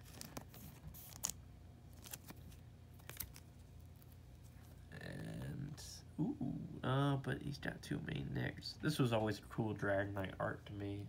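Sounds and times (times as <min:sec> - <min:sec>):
plastic sleeve crinkling: 0:00.0 - 0:04.2.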